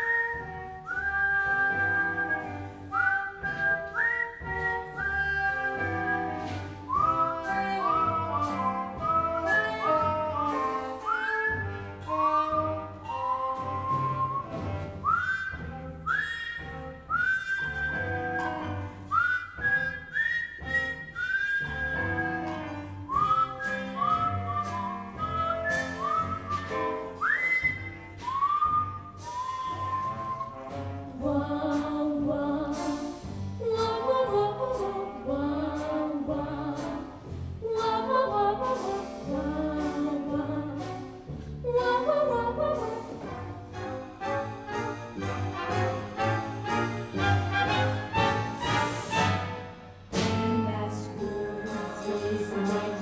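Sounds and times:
jazz dance music: 0.0s - 53.0s.

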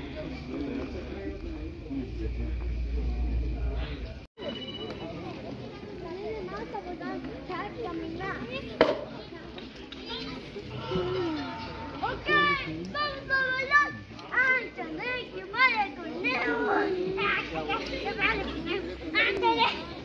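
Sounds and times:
crowd chatter: 0.0s - 20.0s
children calling and shouting: 4.4s - 20.0s.

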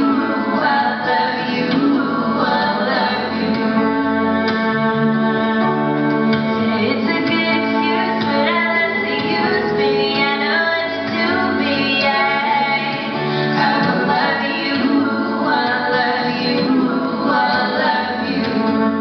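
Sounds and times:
acoustic guitar strumming: 0.0s - 19.0s
woman singing: 0.0s - 19.0s.

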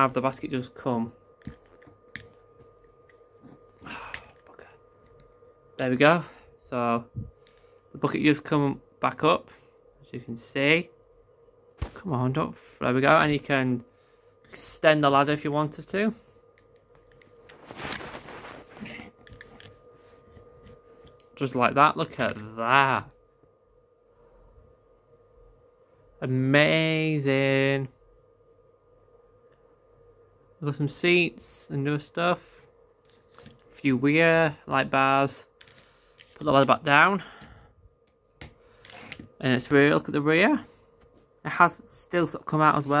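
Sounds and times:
faint steady hum: 0.0s - 43.0s
soft rustle of handling: 15.9s - 22.6s, 38.8s - 41.5s
hand rubbing against phone: 17.4s - 21.1s.

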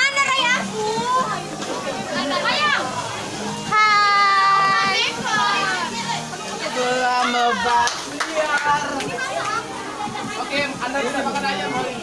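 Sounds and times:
young people chattering: 0.0s - 12.0s.

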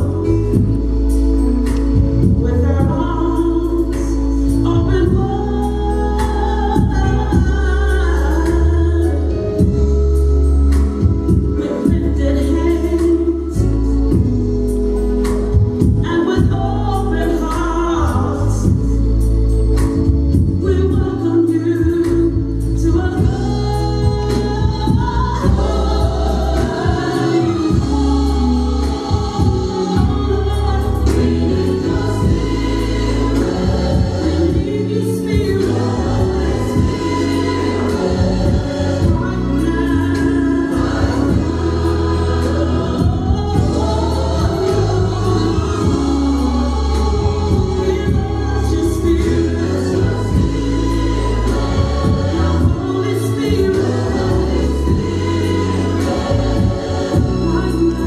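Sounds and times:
choir singing gospel music: 0.0s - 58.0s.

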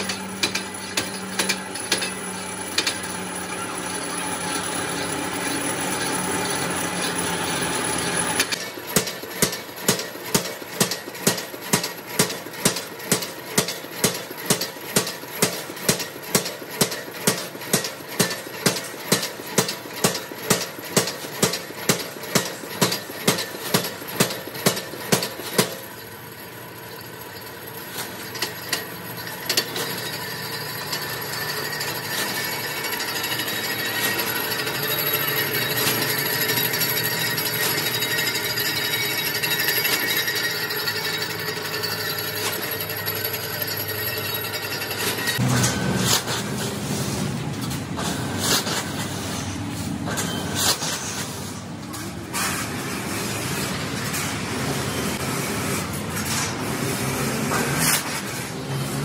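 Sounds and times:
punch press striking metal sheet: 0.0s - 3.4s, 8.4s - 25.9s, 44.4s - 46.8s
steady machine noise: 0.0s - 51.1s.

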